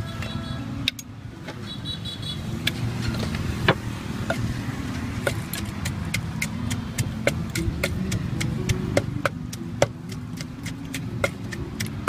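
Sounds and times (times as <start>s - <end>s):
pestle pounding in a mortar: 5.2s - 12.0s.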